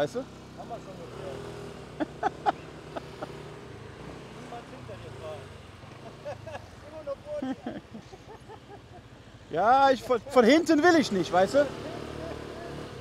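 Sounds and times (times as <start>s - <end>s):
scooter engines pulling away: 0.0s - 13.0s.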